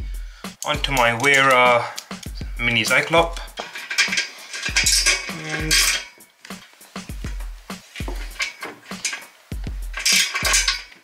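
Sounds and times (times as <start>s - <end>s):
music with deep bass beat: 0.0s - 1.4s, 2.0s - 3.6s, 4.7s - 6.1s, 6.9s - 8.5s, 9.4s - 11.0s
ratchet clicking: 3.4s - 6.1s.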